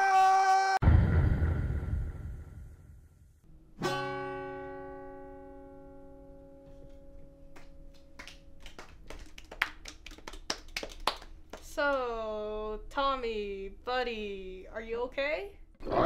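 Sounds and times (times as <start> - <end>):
acoustic guitar chord strummed: 3.5 - 7.5
sharp claps: 7.5 - 12.0.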